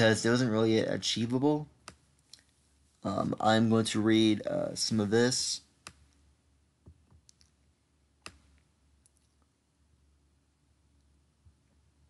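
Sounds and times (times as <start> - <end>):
computer mouse clicks: 8.2 - 9.4.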